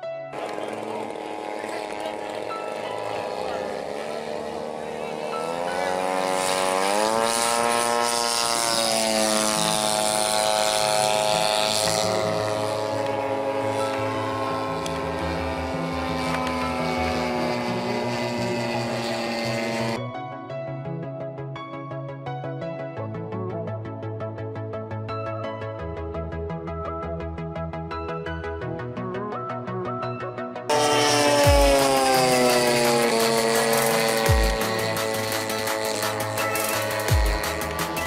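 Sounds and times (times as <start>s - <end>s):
model plane engine droning: 0.3s - 20.1s, 30.7s - 38.0s.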